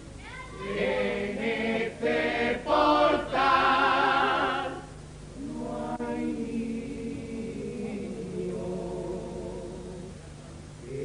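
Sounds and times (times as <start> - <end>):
choir singing in chorus: 0.6 - 10.2.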